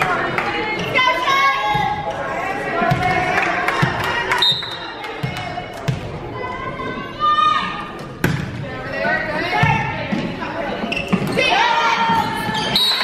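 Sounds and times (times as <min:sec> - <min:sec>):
players and spectators shouting: 0:00.0 - 0:08.0, 0:11.4 - 0:13.0.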